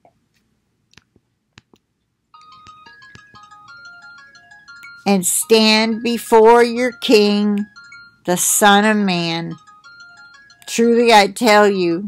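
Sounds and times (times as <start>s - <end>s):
high chiming melody: 2.4s - 12.0s.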